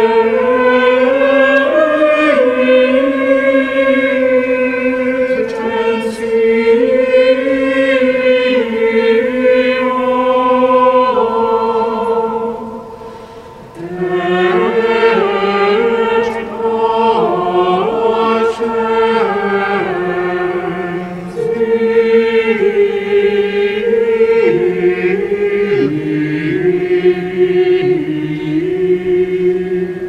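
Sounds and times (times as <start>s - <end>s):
mixed choir singing a hymn: 0.0s - 30.0s.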